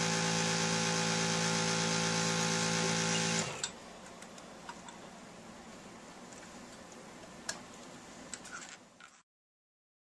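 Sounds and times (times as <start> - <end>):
suction pump humming: 0.0 - 3.7.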